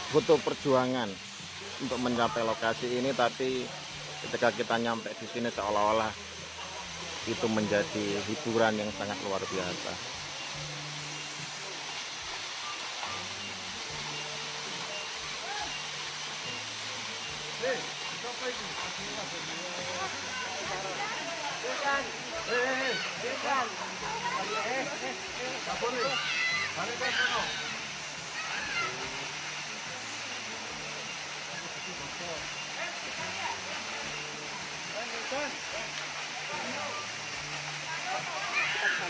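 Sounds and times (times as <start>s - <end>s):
waterfall rushing: 0.0s - 39.0s.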